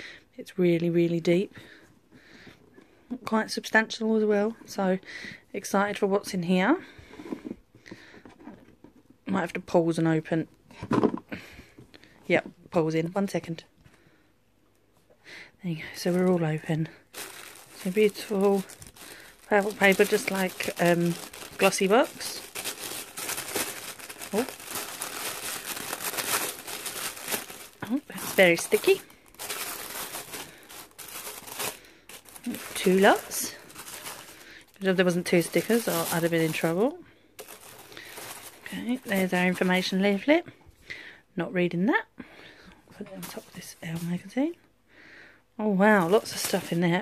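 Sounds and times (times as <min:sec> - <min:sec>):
tissue paper crinkling: 0:16.0 - 0:40.3, 0:43.2 - 0:44.3, 0:45.9 - 0:47.0.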